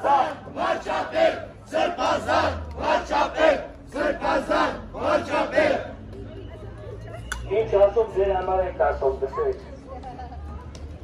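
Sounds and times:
protesters chanting in unison: 0.0 - 6.0.

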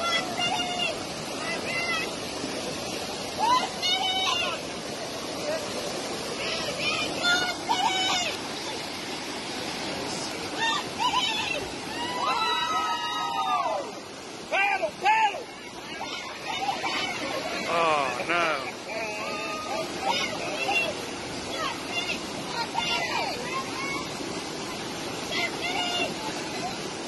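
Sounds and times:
water roaring over a dam: 0.0 - 27.0
people calling out: 3.4 - 4.6, 6.6 - 8.8, 10.5 - 23.8.

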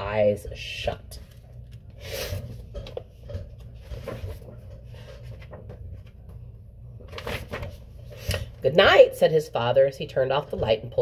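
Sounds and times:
steady low hum: 0.0 - 11.0
book page rustling: 1.2 - 2.8, 3.6 - 6.4, 7.0 - 8.5.

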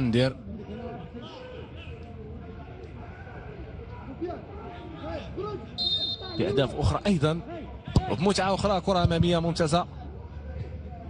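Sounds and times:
players shouting: 0.4 - 11.0
referee's whistle: 5.8 - 6.6.

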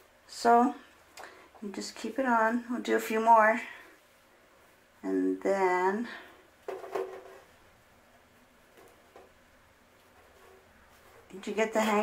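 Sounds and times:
short rustles or knocks: 6.6 - 7.6
soft fabric handling: 7.1 - 12.0.

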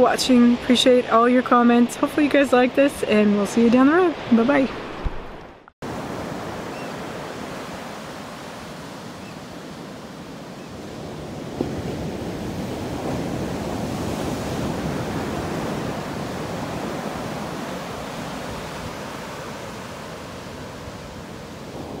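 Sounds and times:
ocean surf on sandy beach: 0.0 - 22.0.

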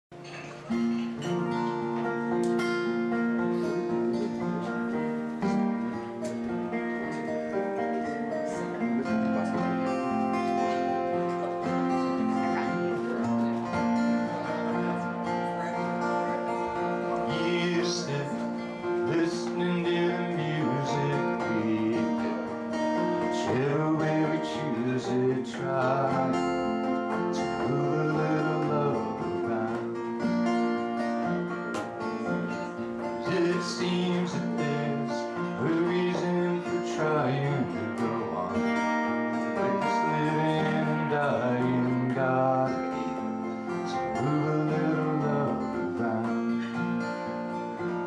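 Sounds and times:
acoustic guitars playing folk music: 0.1 - 48.0.

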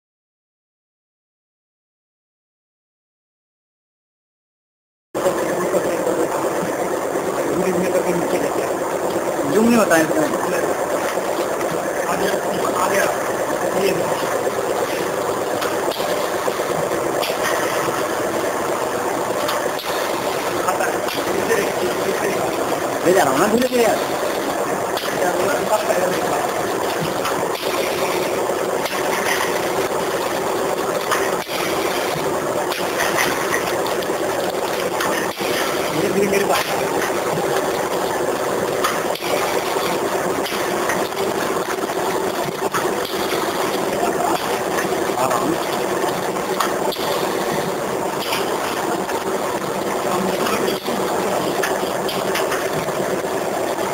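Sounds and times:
packing machine humming: 5.2 - 53.9.

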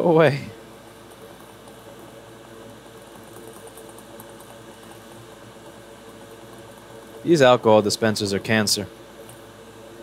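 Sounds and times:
hot air blower fan hum: 0.0 - 10.0.

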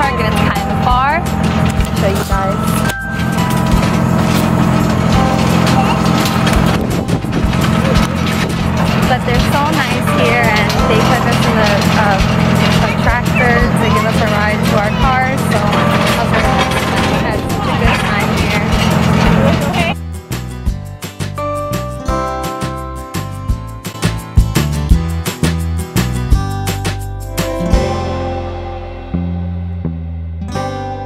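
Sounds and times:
people's voices: 0.0 - 2.9, 7.6 - 20.0
vehicle engine droning: 0.0 - 20.4.

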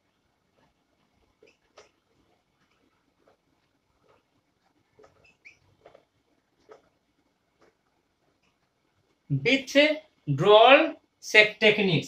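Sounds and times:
marker squeaking on whiteboard: 0.5 - 7.0.

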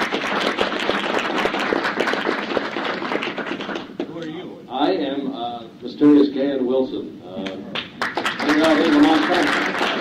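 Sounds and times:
audience applauding: 0.0 - 4.0, 7.8 - 10.0.

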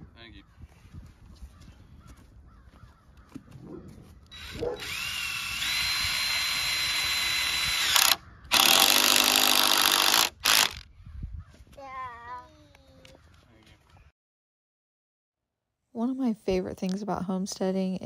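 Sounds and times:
cordless drill driving screws: 4.3 - 10.8
small child's voice: 11.7 - 13.2.

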